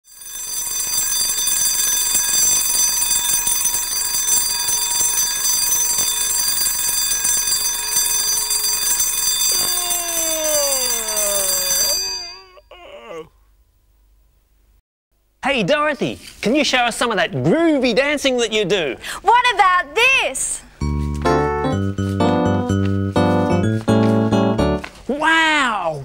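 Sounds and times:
alarm clock ringing: 0.1s - 12.4s
tone sliding downward: 20.8s - 24.8s.

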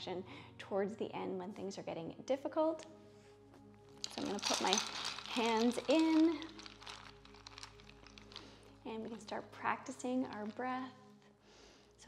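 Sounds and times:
soft background music: 0.0s - 12.0s
ice cubes clicking: 4.0s - 9.3s.

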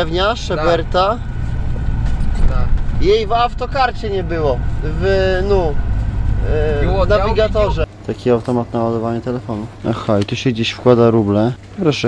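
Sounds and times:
truck engine and road drone: 0.0s - 11.8s
faint steady whine: 0.0s - 12.0s.

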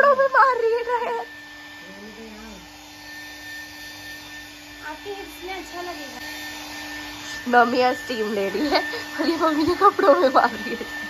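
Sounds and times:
hair dryer running: 0.0s - 11.0s.

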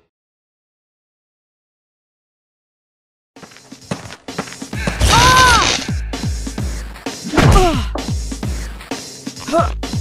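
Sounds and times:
music: 3.4s - 10.0s.

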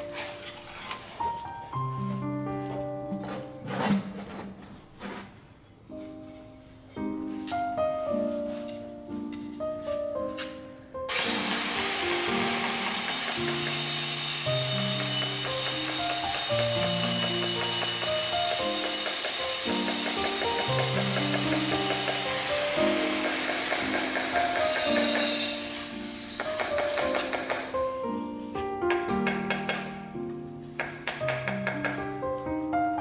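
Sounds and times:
plucked piano-like music: 5.8s - 11.1s, 14.5s - 33.0s
power tool whining: 11.1s - 27.7s.

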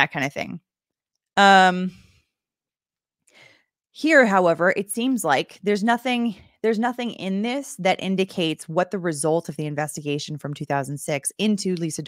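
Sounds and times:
faint breath in: 3.3s - 3.7s.

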